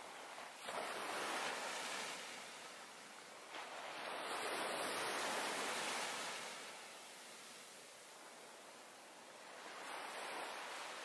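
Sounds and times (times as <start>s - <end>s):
small waves washing on beach: 0.0s - 11.0s.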